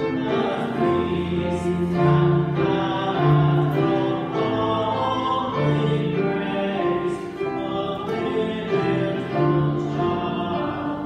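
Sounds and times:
hymn singing: 0:00.0 - 0:11.0
keyboard accompaniment: 0:00.0 - 0:11.0.

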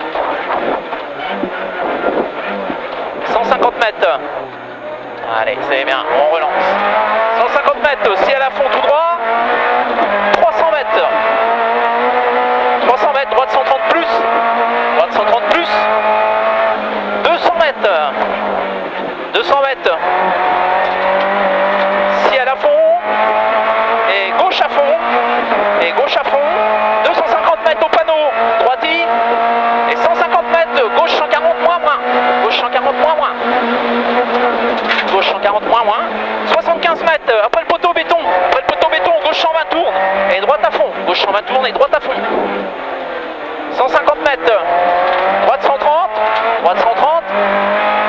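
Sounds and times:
rally car engine accelerating: 0:00.0 - 0:48.0.

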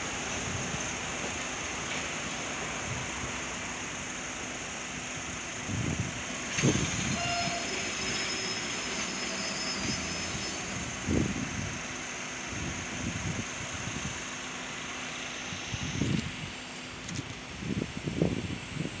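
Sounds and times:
faint high whine: 0:00.0 - 0:19.0
train wheels rumbling on rail: 0:00.0 - 0:19.0.

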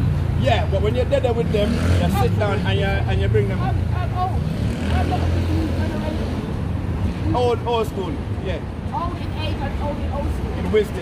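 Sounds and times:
faint street talk: 0:00.0 - 0:11.0
road traffic rumble: 0:00.0 - 0:11.0.

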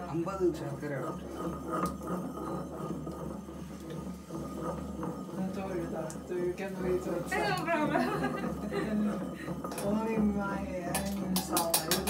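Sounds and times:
pestle grinding in mortar: 0:00.0 - 0:12.0
pestle knocking against bowl: 0:00.5 - 0:12.0
people talking: 0:05.4 - 0:09.1, 0:09.8 - 0:12.0
people laughing: 0:07.7 - 0:09.6.

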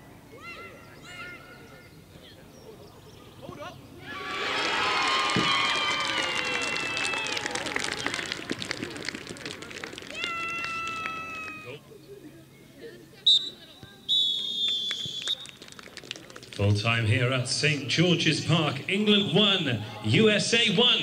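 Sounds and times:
people shouting and cheering: 0:04.0 - 0:11.8
referee's whistle blasts: 0:13.3 - 0:15.4.

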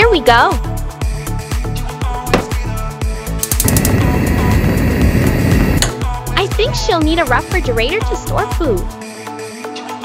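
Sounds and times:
background music: 0:00.0 - 0:10.0
gas flame rushing rumble: 0:03.4 - 0:06.0
gas igniter clicks: 0:03.4 - 0:06.0.

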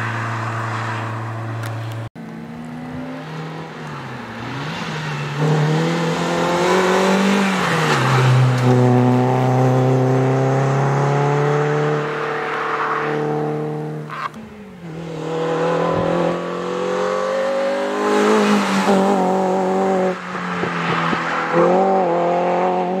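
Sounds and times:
car engine revving: 0:00.0 - 0:23.0.

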